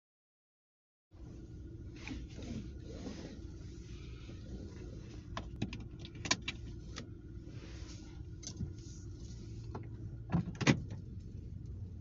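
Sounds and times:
car low hum: 1.1s - 12.0s.

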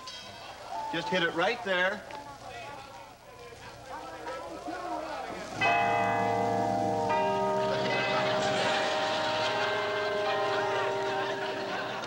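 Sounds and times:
bells ringing: 0.0s - 0.7s, 5.6s - 12.0s
differently pitched bell peal: 5.6s - 12.0s.

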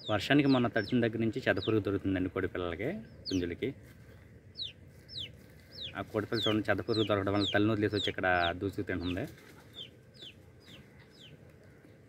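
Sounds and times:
young chickens peeping: 0.0s - 12.0s.

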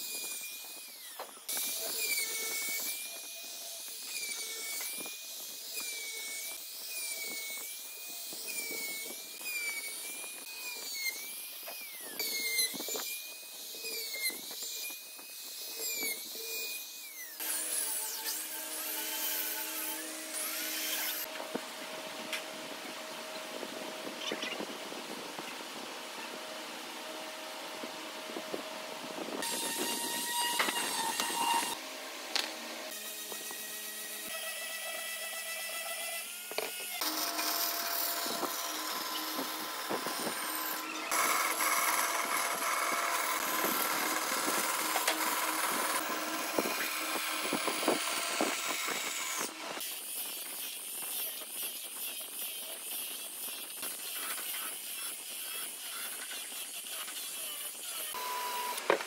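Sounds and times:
band saw cutting wood: 0.0s - 21.5s, 29.3s - 59.0s
power tools working wood: 0.0s - 59.0s.

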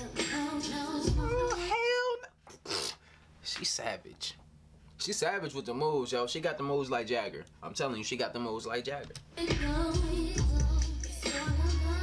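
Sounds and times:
music: 0.0s - 1.7s, 9.4s - 12.0s.

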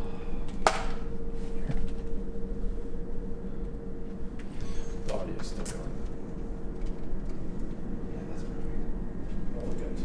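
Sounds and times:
steady hum and low rumble: 0.0s - 10.0s.

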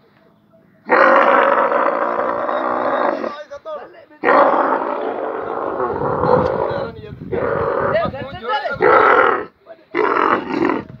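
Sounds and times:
young camel bellowing: 0.8s - 3.4s, 4.2s - 8.1s, 8.7s - 11.0s.

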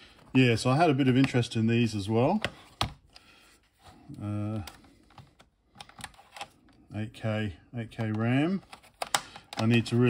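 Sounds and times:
plastic clicks and taps: 7.9s - 9.9s.

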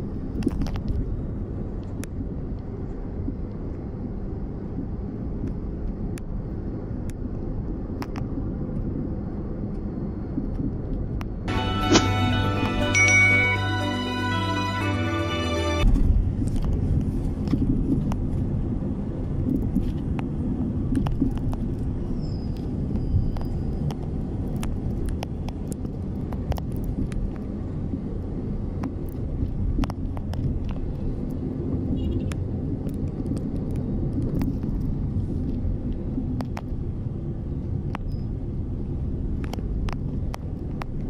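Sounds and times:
car driving rumble: 0.0s - 41.0s.

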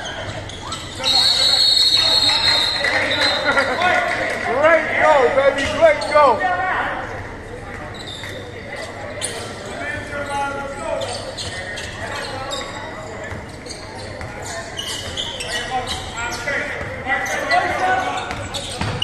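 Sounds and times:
sneakers squeaking on gym floor: 0.0s - 3.5s, 7.7s - 19.0s.

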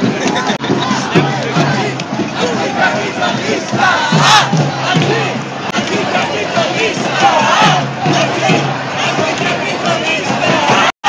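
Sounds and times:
crowd shouting and chanting: 0.0s - 11.0s.

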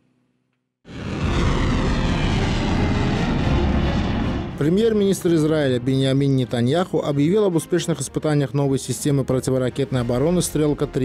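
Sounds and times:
rocket motor rushing rumble: 0.9s - 5.5s.

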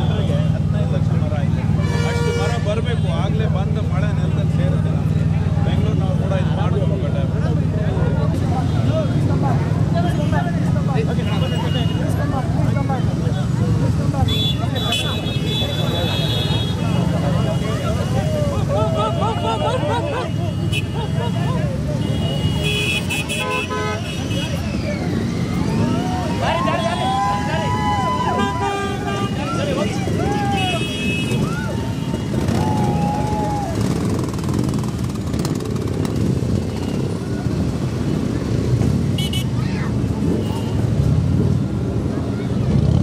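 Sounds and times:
motorcycle engines running: 0.0s - 43.0s
crowd voices calling out: 13.9s - 34.8s.

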